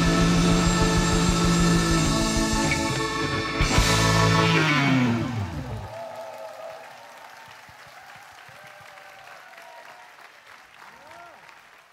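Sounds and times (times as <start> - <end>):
drum rumble: 0.0 - 5.8
electric guitar sustained chord: 0.0 - 5.9.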